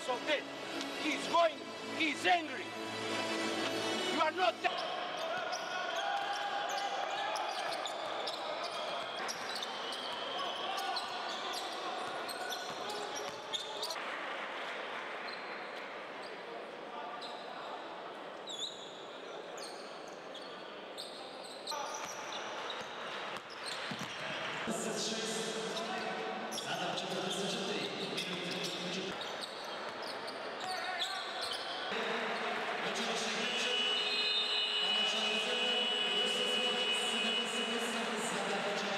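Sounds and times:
voices echoing: 0:00.0 - 0:14.0, 0:21.0 - 0:38.9
crowd noise: 0:00.0 - 0:38.9.

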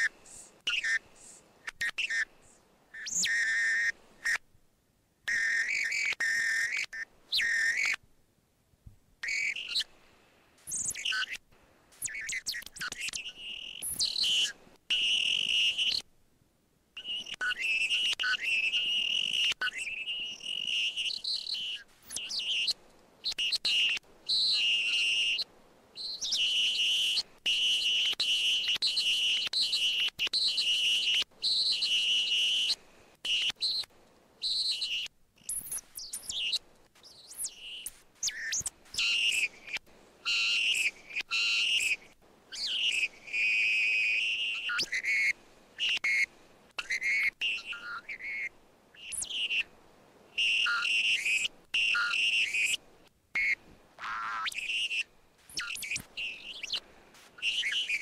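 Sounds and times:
chirping whistle-like electronic tones: 0:00.0 - 0:02.3, 0:03.0 - 0:04.4, 0:05.3 - 0:08.0, 0:09.2 - 0:09.9, 0:10.7 - 0:11.4, 0:12.0 - 0:16.0, 0:17.0 - 0:49.7, 0:50.4 - 0:52.8, 0:53.4 - 0:56.8, 0:57.4 - 0:58.0.

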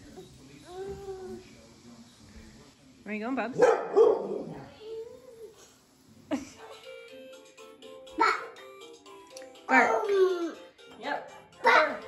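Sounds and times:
dog barking: 0:03.6 - 0:04.6.

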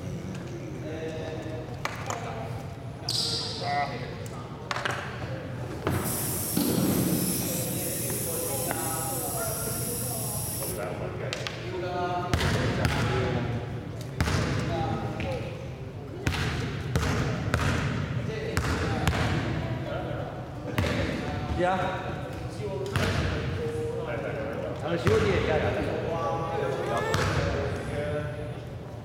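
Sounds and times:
voices talking: 0:05.9 - 0:10.8.

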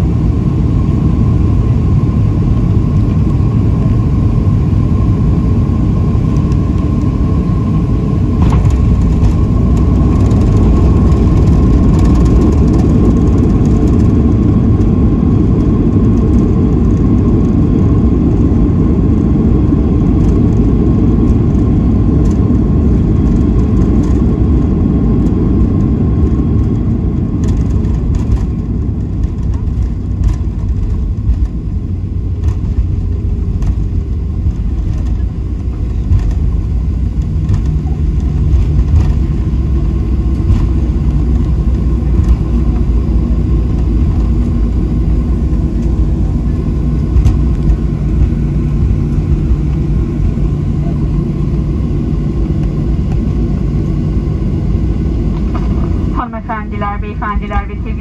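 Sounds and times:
airplane engines and wheels rumbling: 0:00.0 - 0:58.0.

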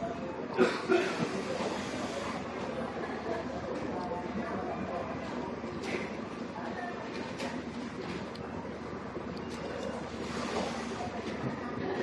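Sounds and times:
murmur of voices: 0:00.0 - 0:12.0
room noise hum: 0:00.0 - 0:12.0.

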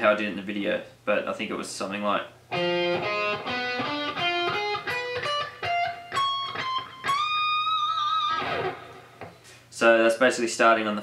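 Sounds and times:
overdriven electric guitar run: 0:02.6 - 0:09.2.

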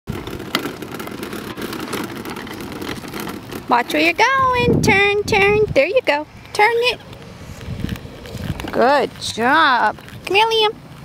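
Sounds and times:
tricycle sharp clicks: 0:00.1 - 0:04.4
tricycle rolling on asphalt: 0:00.1 - 0:11.0.

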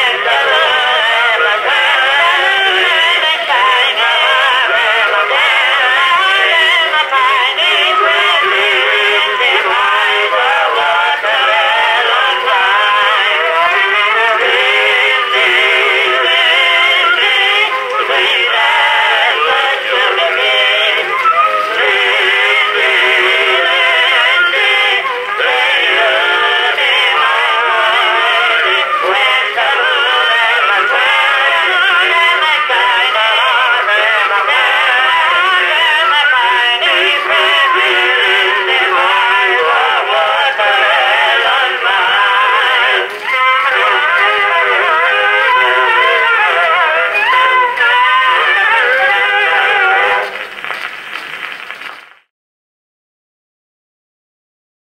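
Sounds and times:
phonograph record of men singing: 0:00.0 - 0:50.9.

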